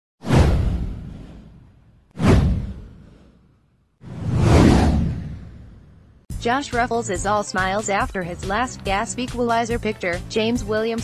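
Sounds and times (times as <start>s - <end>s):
deep boom: 0.2s - 3.2s, 4.1s - 6.2s
downward whoosh: 4.0s - 6.0s.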